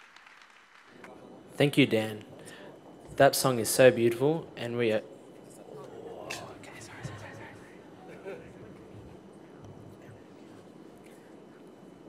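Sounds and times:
murmured speech and whispering: 2.1s - 12.0s.

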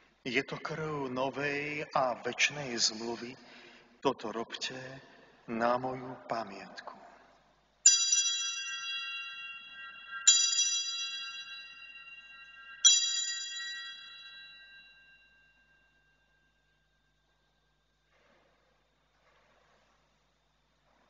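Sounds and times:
altar bells ringing: 7.9s - 17.3s.

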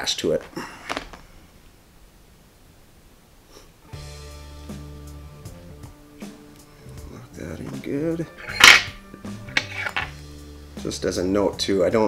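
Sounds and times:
soft background music: 3.9s - 12.0s.

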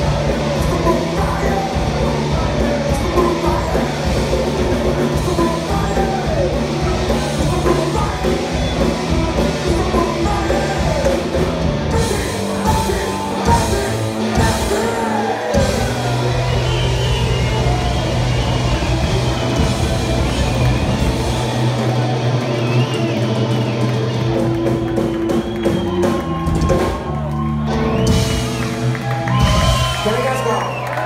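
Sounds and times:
rock band playing live: 0.0s - 31.0s.

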